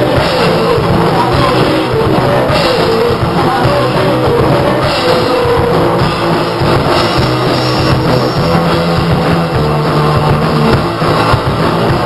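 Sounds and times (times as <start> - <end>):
drum kit: 0.0 - 12.0
electric bass: 0.0 - 12.0
electric guitar: 0.0 - 12.0.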